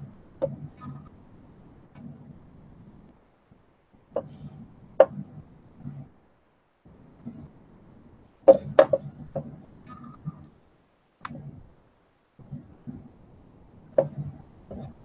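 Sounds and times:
faint low hum: 0.0s - 15.0s
tools knocking on work table: 8.5s - 9.5s.

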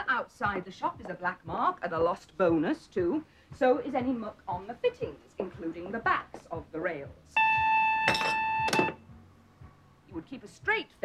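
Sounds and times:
intercom buzzer tone: 7.4s - 9.0s
cup clattering on saucer: 8.1s - 9.0s.

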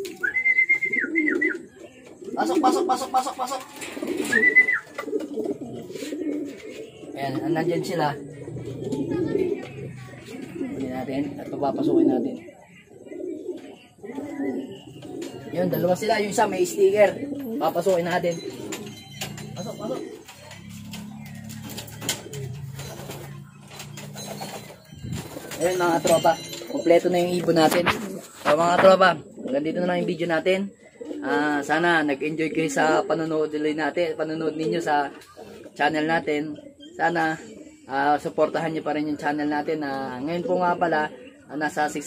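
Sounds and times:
pigeons cooing: 0.0s - 42.0s.

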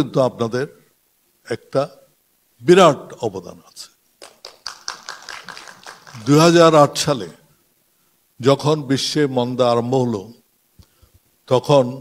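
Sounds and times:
person speaking: 2.7s - 7.5s.

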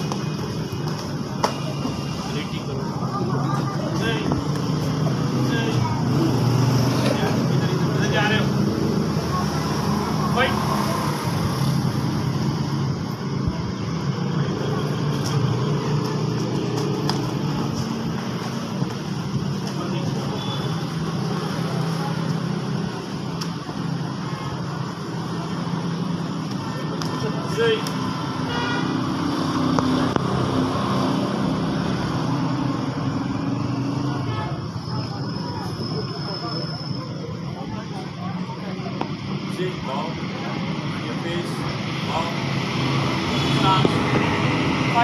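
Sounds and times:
indistinct voices: 0.0s - 45.0s.

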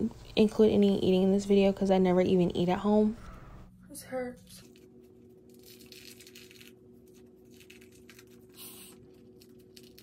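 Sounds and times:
room fan humming: 0.0s - 10.0s
face mask peeling off skin: 4.7s - 10.0s.

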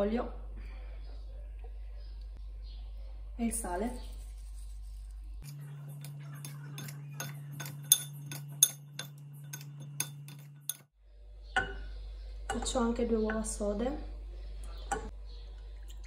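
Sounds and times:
fork tines clinking on glass: 5.4s - 10.9s.

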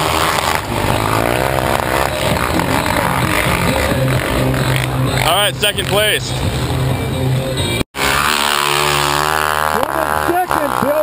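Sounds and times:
snow bike engine passing by: 0.0s - 6.2s, 8.0s - 11.0s.

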